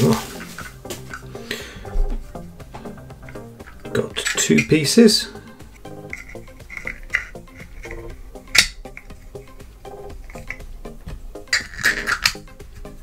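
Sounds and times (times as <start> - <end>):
plucked background music: 0.0 - 13.0.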